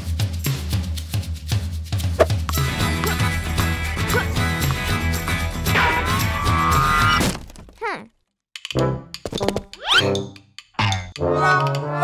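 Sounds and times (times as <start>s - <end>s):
children's music: 2.5s - 7.0s, 10.0s - 12.0s.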